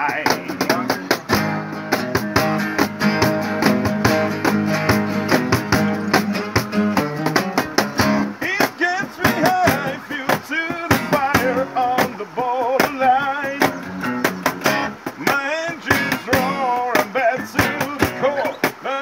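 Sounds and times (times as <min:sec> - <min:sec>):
man singing: 0:00.0 - 0:01.5, 0:08.3 - 0:14.2, 0:14.8 - 0:19.0
acoustic guitars strumming: 0:00.0 - 0:19.0.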